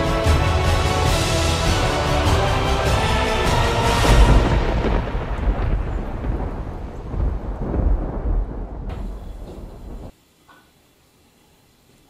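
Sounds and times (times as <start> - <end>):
deep thunder clap rolling: 2.4 - 10.1.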